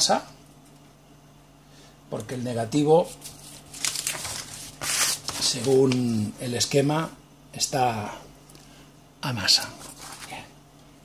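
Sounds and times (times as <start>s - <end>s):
paper rustling: 3.0s - 6.3s, 9.7s - 10.5s.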